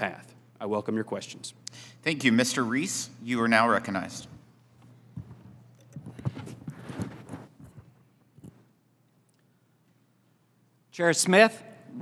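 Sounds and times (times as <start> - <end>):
papers being handled: 5.2 - 8.0.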